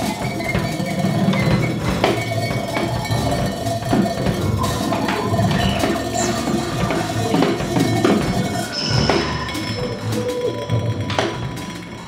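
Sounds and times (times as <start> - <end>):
free jazz band playing: 0.0 - 12.0
scattered knocks and taps: 0.0 - 12.0.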